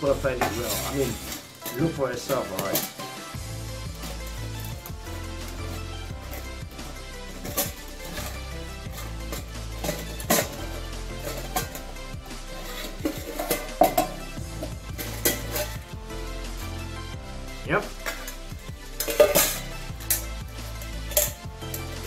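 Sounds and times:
metal cook pots clinking: 0.0s - 16.0s, 17.9s - 22.0s
background music with stepping bass: 0.0s - 22.0s.

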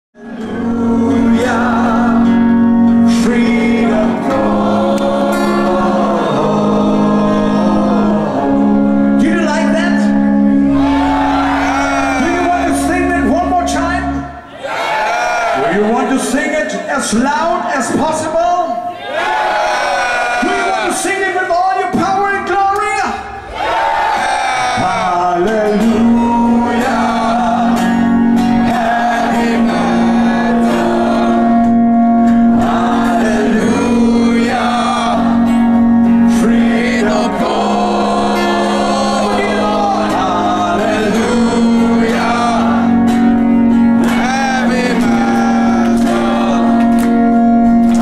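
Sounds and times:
crowd singing and whooping: 0.2s - 9.2s, 10.3s - 13.1s, 23.4s - 48.0s
acoustic guitar: 0.2s - 14.6s, 24.6s - 48.0s.

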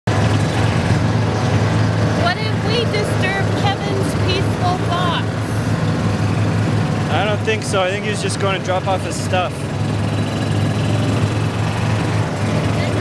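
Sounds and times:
utility vehicle engine humming: 0.1s - 13.0s.

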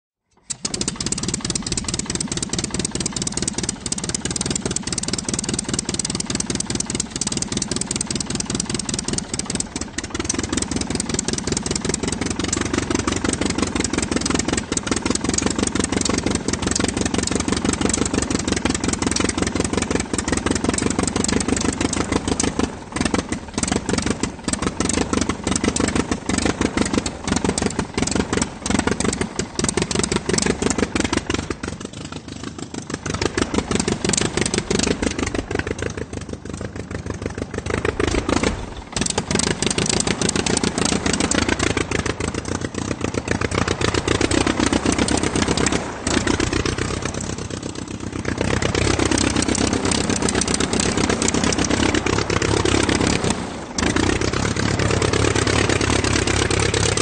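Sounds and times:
aircraft engine running: 0.3s - 57.0s.

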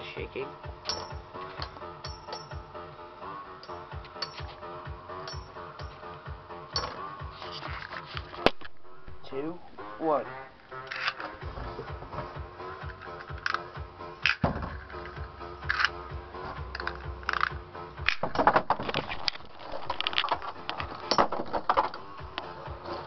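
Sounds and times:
electronic dance music: 2.6s - 7.4s.

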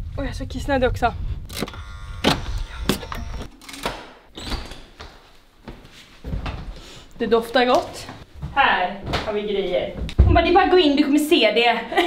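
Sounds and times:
low rumble: 0.0s - 1.6s.

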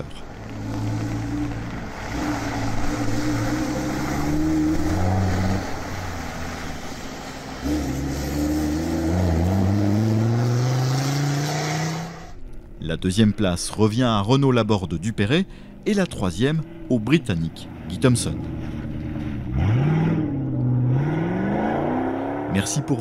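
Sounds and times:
car engine accelerating hard: 0.0s - 12.4s, 16.4s - 23.0s.

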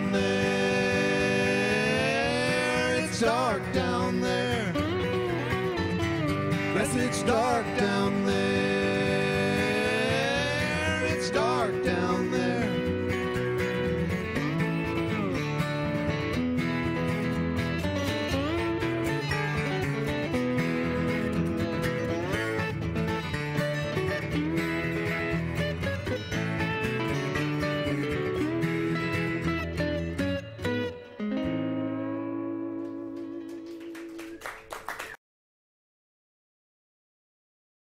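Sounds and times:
resonator guitar slide notes: 0.0s - 34.1s
strummed acoustic guitar: 0.0s - 34.1s.

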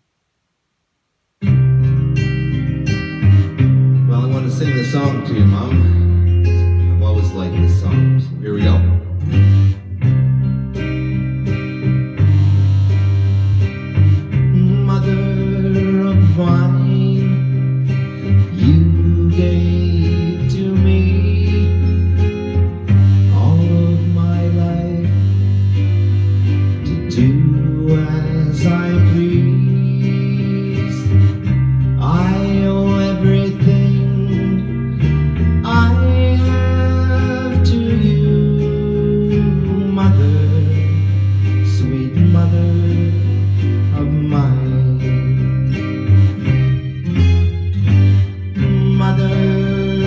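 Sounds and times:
bass line: 1.4s - 50.0s
country guitar backing track: 1.4s - 50.0s.

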